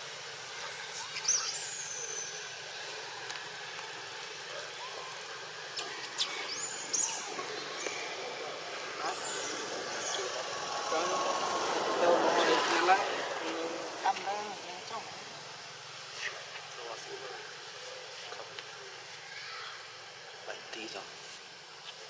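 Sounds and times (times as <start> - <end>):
outdoor background hum: 0.0 - 22.0.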